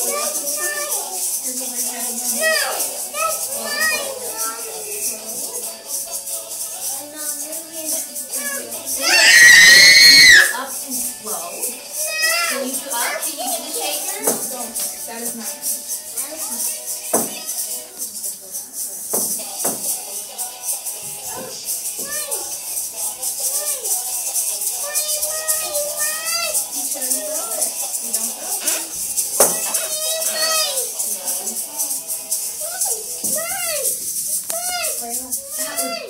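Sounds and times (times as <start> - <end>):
music with voices: 0.0 - 36.0
plastic egg shakers rattling: 0.0 - 36.0.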